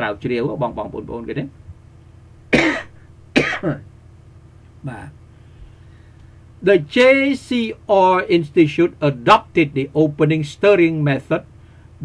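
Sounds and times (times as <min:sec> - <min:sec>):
man coughing: 0:02.5 - 0:03.8.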